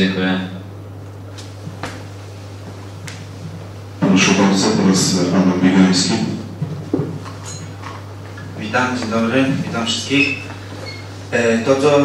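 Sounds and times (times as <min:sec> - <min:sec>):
microphone handling noise: 0:06.5 - 0:11.3.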